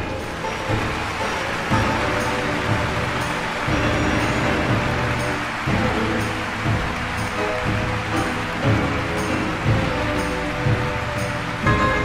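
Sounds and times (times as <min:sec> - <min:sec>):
symphony orchestra playing: 0:00.0 - 0:12.0.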